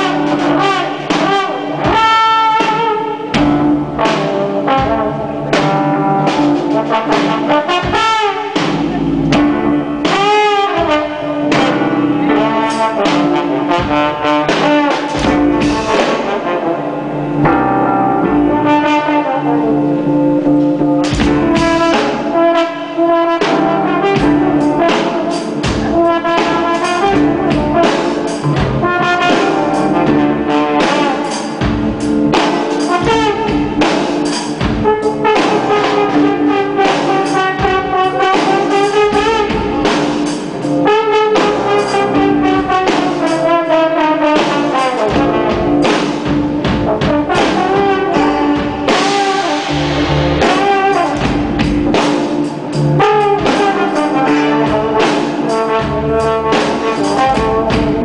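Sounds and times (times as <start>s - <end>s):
band and orchestra playing: 0.0s - 58.0s.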